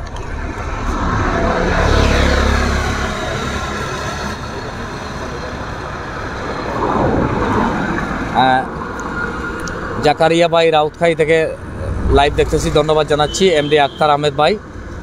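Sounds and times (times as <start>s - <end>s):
vehicles passing on road: 0.0s - 15.0s.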